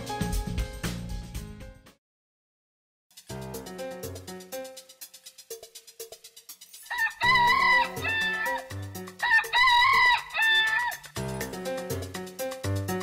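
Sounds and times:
light background music: 3.2s - 13.0s
rooster crowing: 6.9s - 11.1s.

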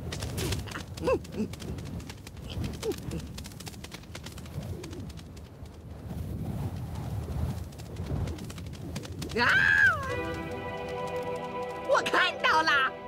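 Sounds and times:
low rumble of wind: 0.0s - 12.0s
wings fluttering: 0.0s - 12.9s.

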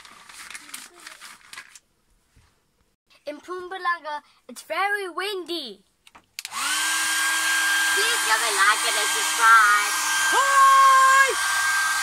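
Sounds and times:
plastic shower cap crinkling: 0.0s - 1.9s.

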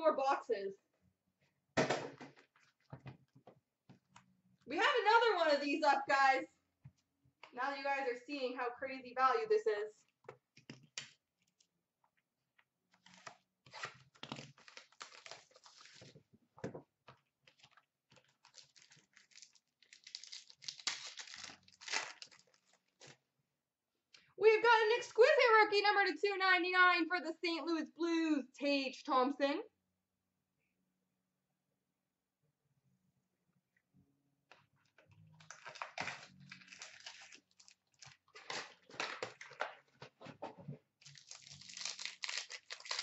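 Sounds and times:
plastic wrapping tearing and crinkling: 13.0s - 16.2s, 17.4s - 23.2s, 35.4s - 40.0s, 41.0s - 43.0s.

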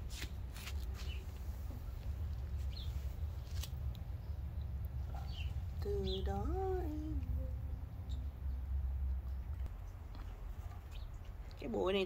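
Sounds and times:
low rumble: 1.6s - 11.6s
faint bird chirp: 4.2s - 10.0s.

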